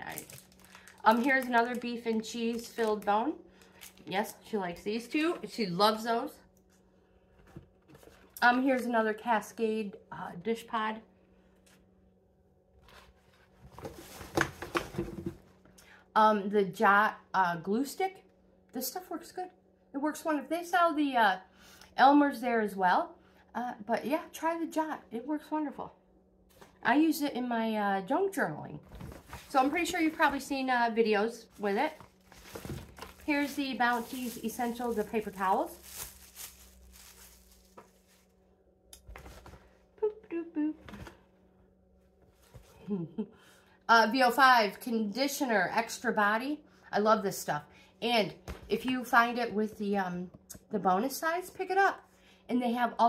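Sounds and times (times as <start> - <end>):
rustling of packaging in a bag: 0.0 - 4.5, 28.9 - 30.5, 31.4 - 38.4.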